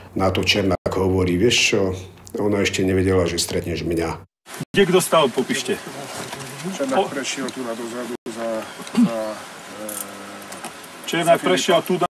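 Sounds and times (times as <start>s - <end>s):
man talking: 0.1s - 12.0s.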